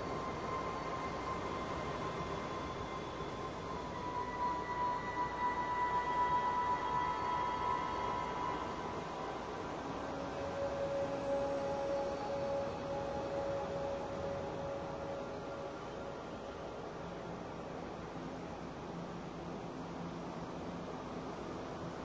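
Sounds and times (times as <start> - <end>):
ambient synthesizer notes: 0.0 - 17.4.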